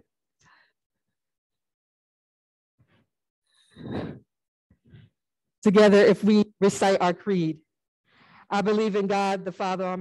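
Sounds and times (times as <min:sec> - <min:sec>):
person sighing: 0:03.6 - 0:04.3.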